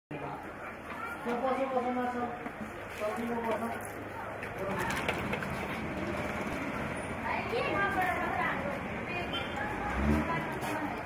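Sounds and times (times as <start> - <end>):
market hubbub: 0.1 - 11.0.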